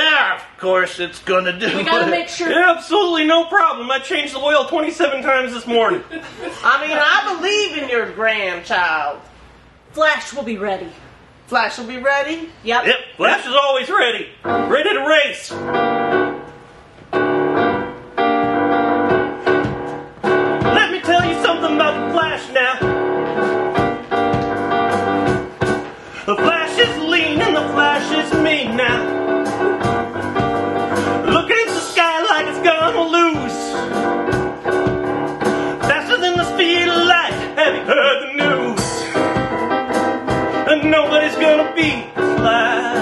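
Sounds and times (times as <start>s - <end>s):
piano chords: 14.1s - 43.0s.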